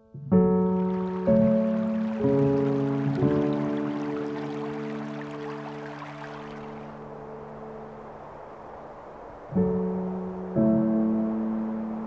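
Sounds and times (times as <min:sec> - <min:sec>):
piano chords ringing: 0:00.0 - 0:08.5, 0:09.5 - 0:12.0
running water hiss: 0:00.4 - 0:12.0.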